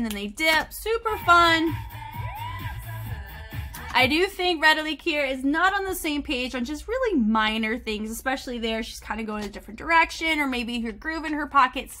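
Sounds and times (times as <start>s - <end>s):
pop dance music: 0.9s - 4.8s.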